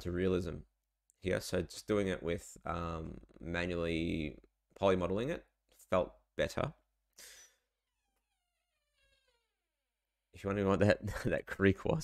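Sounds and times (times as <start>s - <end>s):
door creaking open: 7.8s - 9.8s.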